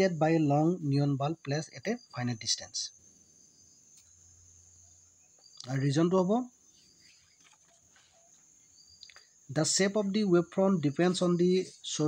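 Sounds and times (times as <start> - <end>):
faint high-pitched hiss: 0.0 - 12.0.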